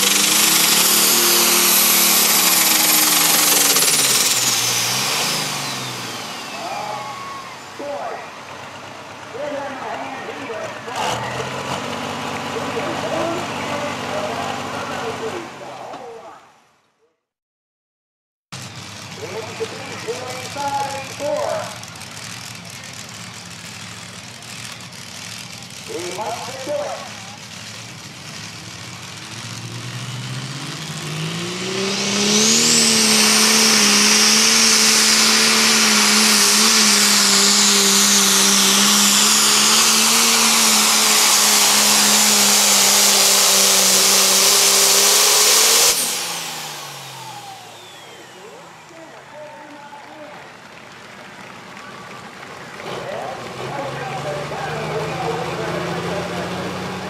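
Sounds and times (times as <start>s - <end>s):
tractor engine revving: 0.0s - 16.3s, 18.5s - 57.0s.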